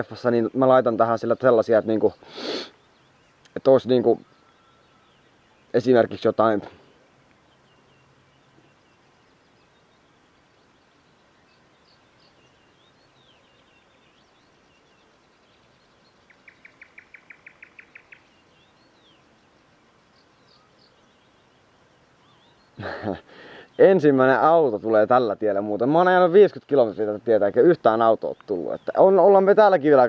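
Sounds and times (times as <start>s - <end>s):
small birds chirping: 0.0s - 30.0s
bird trilling: 1.7s - 24.3s.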